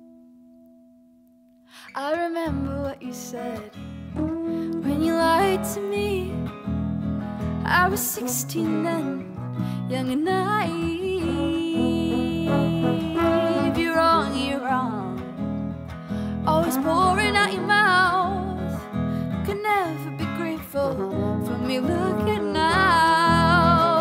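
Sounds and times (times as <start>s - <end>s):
woman singing: 1.8s - 6.6s, 7.4s - 15.5s, 16.3s - 24.0s
strummed acoustic guitar: 2.4s - 24.0s
trombone playing: 11.3s - 14.6s.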